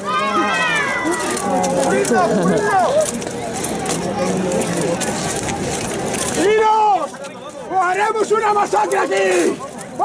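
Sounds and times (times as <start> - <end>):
people shouting: 0.0 - 3.0
crowd: 0.0 - 10.0.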